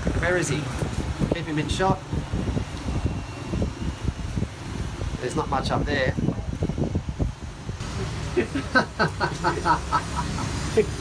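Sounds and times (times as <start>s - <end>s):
fan wind noise on microphone: 0.0s - 11.0s.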